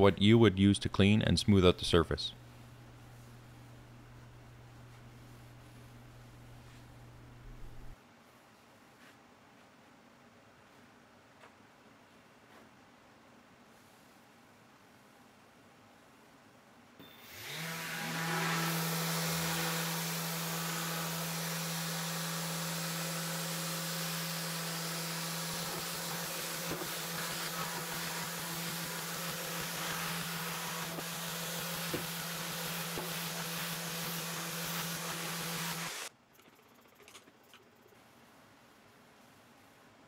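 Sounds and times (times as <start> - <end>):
orbital sander motor hum: 17.1 - 36.1.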